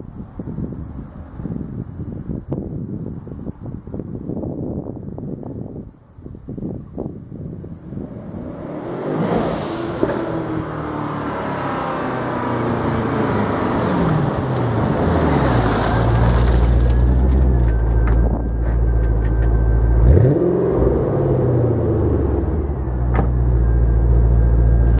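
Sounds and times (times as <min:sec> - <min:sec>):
car engine deep rumble: 0:00.0 - 0:24.9.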